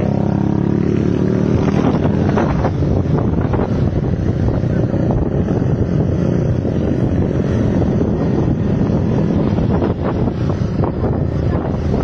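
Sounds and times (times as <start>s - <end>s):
moving vehicle rumble: 0.0s - 12.0s
wind buffeting microphone: 0.0s - 12.0s.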